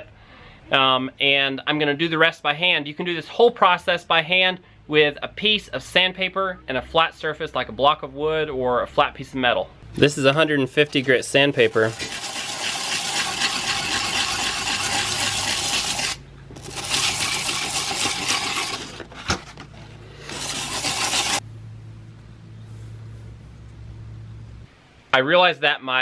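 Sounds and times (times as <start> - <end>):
knife scraping on sandpaper: 11.6 - 21.4
low hum: 12.1 - 25.2.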